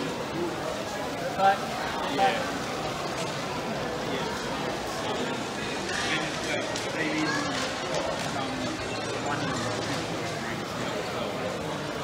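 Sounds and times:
indistinct voices and chatter: 0.0 - 12.0.

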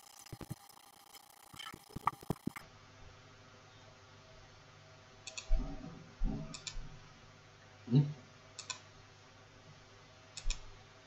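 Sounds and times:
computer mouse clicking: 0.0 - 2.6, 5.3 - 5.5, 6.5 - 6.8, 8.6 - 8.8, 10.4 - 10.6.

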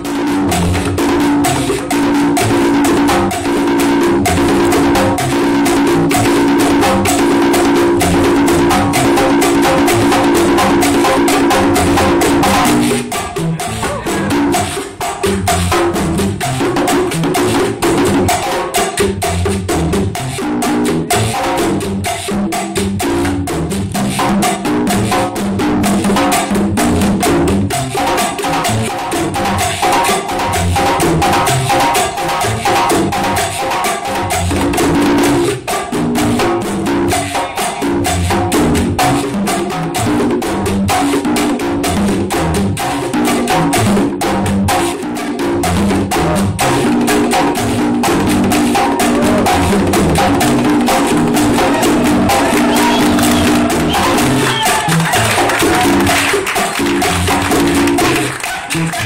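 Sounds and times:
conga hand strokes: 48.1 - 56.2.

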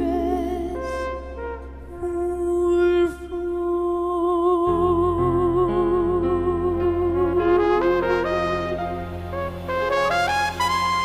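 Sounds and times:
sustained low accompaniment: 0.0 - 11.0
trumpet solo: 7.5 - 11.0.

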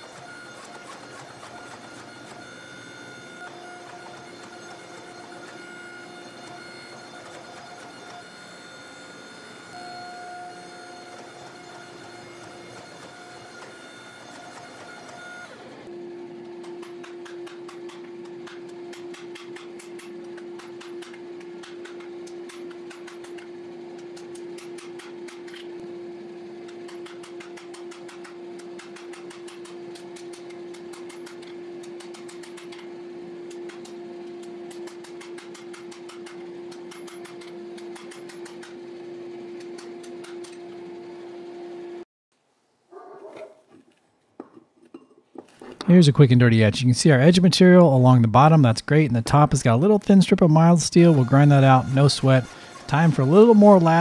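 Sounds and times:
machine hum: 0.0 - 42.1, 45.8 - 54.0.

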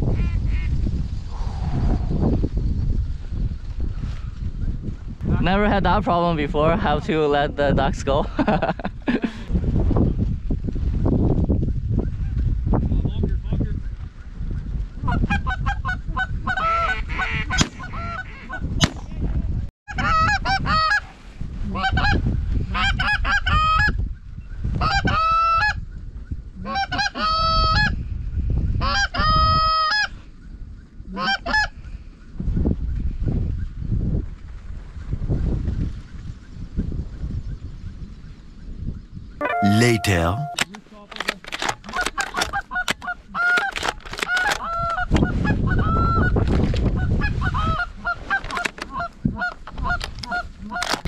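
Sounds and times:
wind rumble on microphone: 0.0 - 39.4, 42.3 - 51.0.

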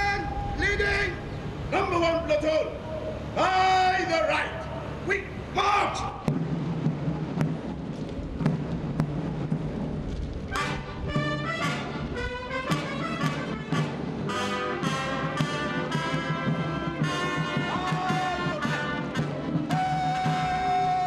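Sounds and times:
military marching band: 0.0 - 21.0
drum beats: 6.0 - 21.0
brass sustained notes: 10.5 - 21.0.

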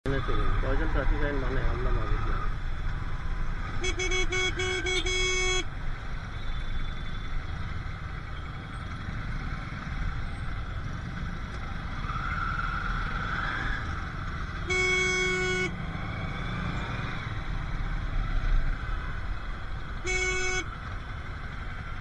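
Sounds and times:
engines running in traffic: 0.0 - 22.0
vehicle horn: 3.8 - 5.7, 14.6 - 15.8, 20.0 - 20.8.

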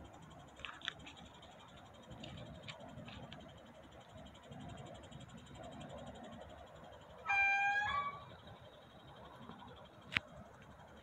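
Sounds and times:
vehicle horn honk: 7.3 - 8.3.

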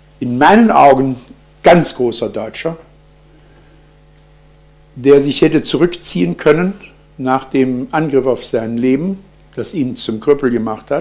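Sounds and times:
faint hiss: 0.0 - 11.0
low electrical mains hum: 0.0 - 11.0.

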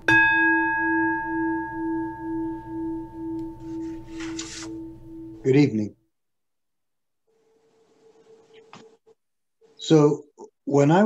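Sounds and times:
bowl bell ringing: 0.0 - 5.5.

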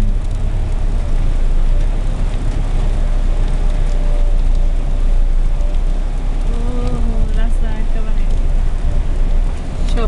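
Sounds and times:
car engine: 0.0 - 10.0
road noise inside car: 0.0 - 10.0.

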